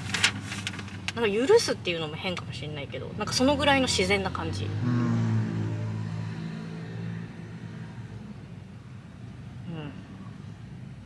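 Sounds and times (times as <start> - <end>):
motor scooter engine passing: 4.2 - 8.2.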